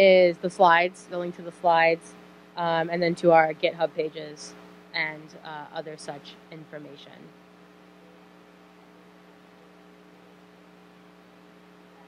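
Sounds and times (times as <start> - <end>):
person speaking: 0.0 - 7.3
low electrical hum: 0.0 - 12.0.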